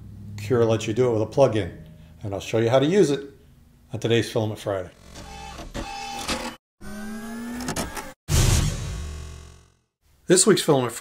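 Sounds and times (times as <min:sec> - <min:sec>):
stepper motors whirring: 0:05.0 - 0:09.8.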